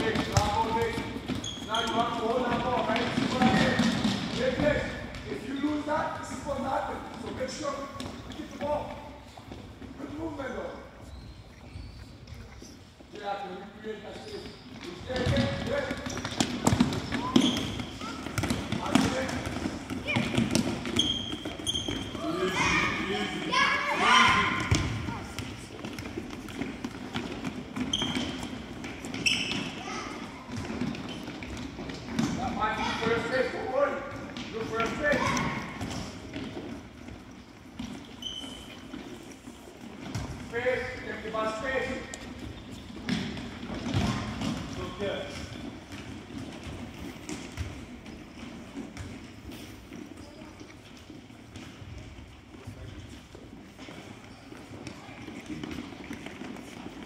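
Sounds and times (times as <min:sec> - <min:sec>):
sneakers squeaking on wood: 0:00.0 - 0:13.2, 0:14.0 - 0:57.0
ball kicked and bouncing on floor: 0:24.3 - 0:29.7.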